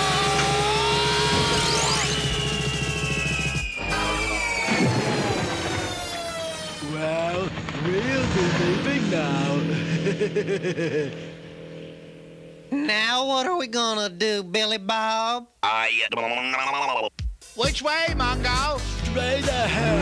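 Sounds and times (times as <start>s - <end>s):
racing vehicle engine effects: 0.0s - 12.8s
falling whistle-like tone: 0.8s - 6.8s
cartoon soundtrack music: 3.5s - 6.5s, 16.6s - 20.0s.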